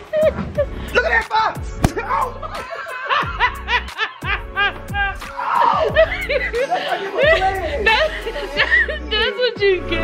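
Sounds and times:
woman laughing hard: 0.0s - 0.7s, 2.4s - 9.1s.

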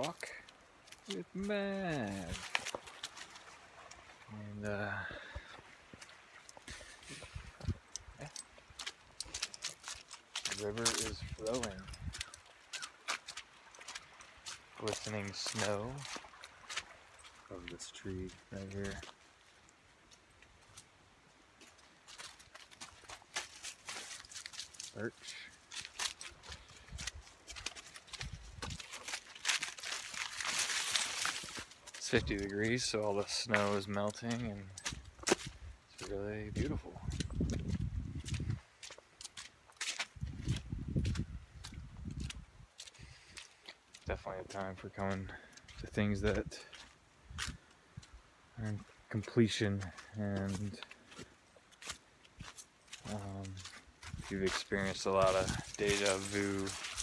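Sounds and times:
footsteps crunching through dry leaves: 0.8s - 4.2s, 8.6s - 19.6s, 21.6s - 45.8s, 49.8s - 57.0s
rustling through dry leaves: 1.9s - 4.1s, 21.8s - 33.9s, 50.8s - 57.0s.

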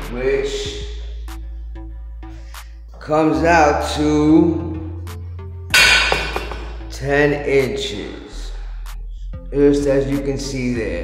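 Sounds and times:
background music with bass: 0.0s - 11.0s
sharp metallic clank: 5.7s - 6.9s.

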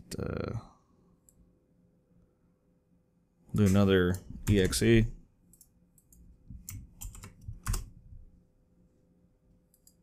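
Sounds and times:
computer keyboard key presses: 5.6s - 7.9s.

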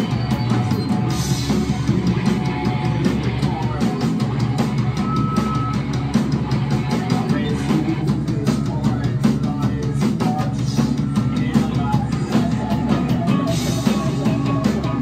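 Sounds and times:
distorted electric guitars: 0.0s - 15.0s
drum kit fast beat: 0.0s - 15.0s.

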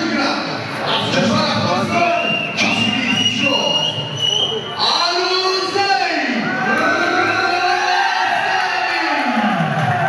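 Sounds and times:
crowd cheering: 6.3s - 10.0s.

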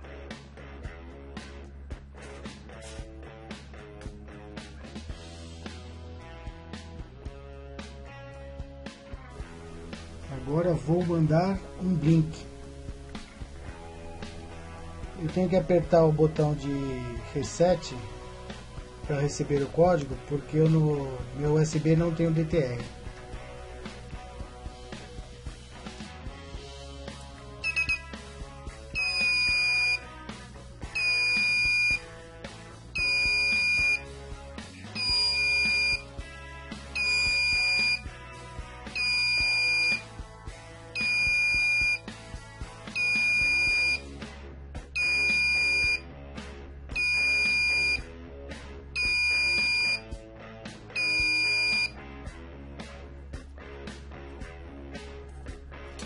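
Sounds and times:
short electronic chirps: 27.6s - 28.0s
electronic buzzer beeping: 27.6s - 28.2s, 29.0s - 30.0s, 31.0s - 32.0s, 33.0s - 34.0s, 34.9s - 36.1s, 37.0s - 38.1s, 39.0s - 40.1s, 41.0s - 42.0s, 42.9s - 44.0s, 45.0s - 46.0s, 47.0s - 48.0s, 49.0s - 50.0s, 51.0s - 52.0s.

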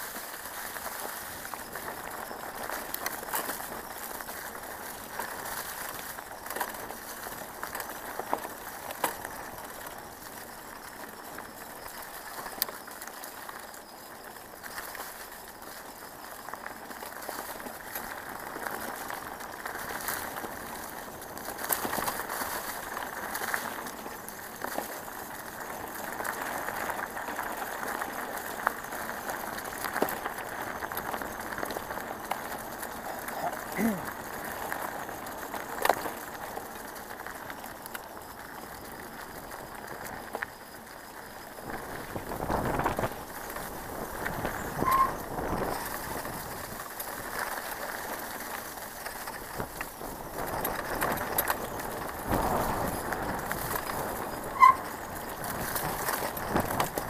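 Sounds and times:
bicycle knocks and rattles: 0.0s - 13.5s, 39.2s - 57.0s
bicycle tyres rustling over leaves: 0.0s - 57.0s.

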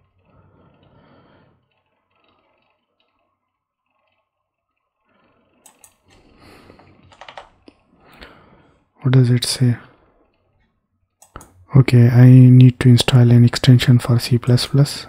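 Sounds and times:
computer keyboard clicks: 5.6s - 6.1s, 7.0s - 7.8s, 11.2s - 11.6s.

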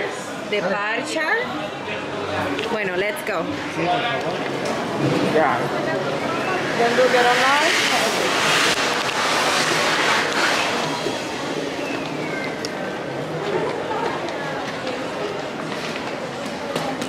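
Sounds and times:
steady crowd hum: 0.0s - 17.0s
loud rustling noise: 6.6s - 12.3s.

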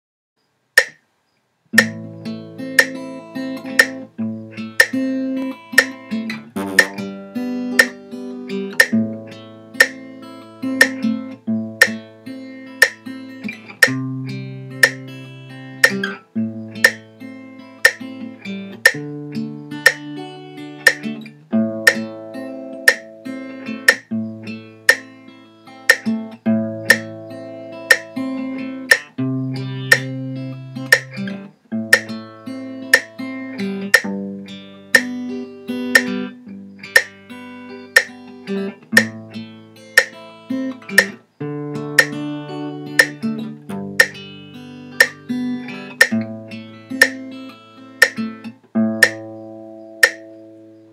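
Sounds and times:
fingerpicked acoustic guitar: 1.7s - 50.9s.

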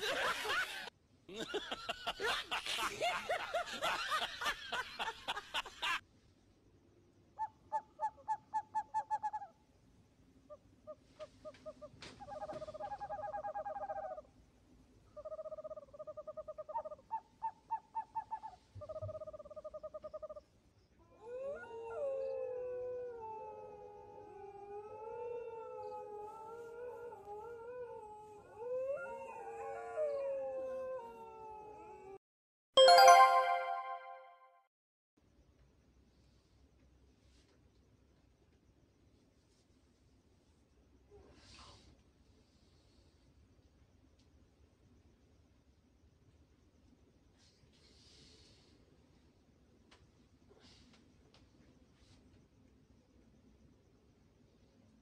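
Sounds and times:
wavering howls: 21.0s - 32.2s.

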